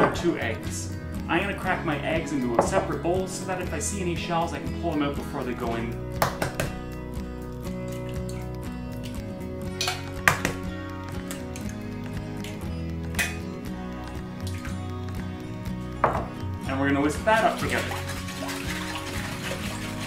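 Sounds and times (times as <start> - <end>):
background music: 0.0 - 20.0
eggs cracked against a bowl: 9.8 - 11.8.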